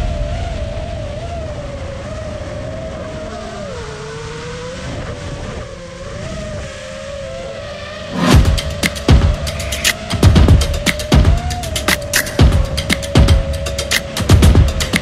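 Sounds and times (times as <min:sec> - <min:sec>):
rush of air: 0:08.1 - 0:11.0.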